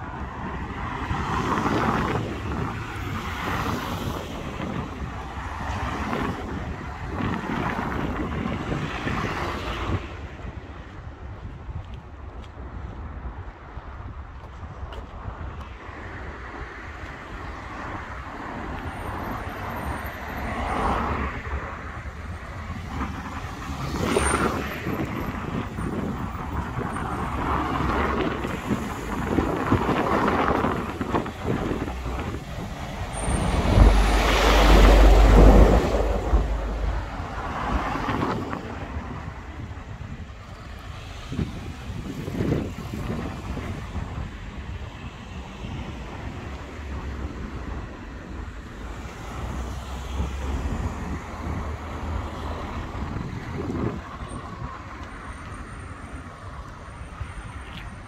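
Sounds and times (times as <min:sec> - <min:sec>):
cars passing: 0:00.0 - 0:58.0.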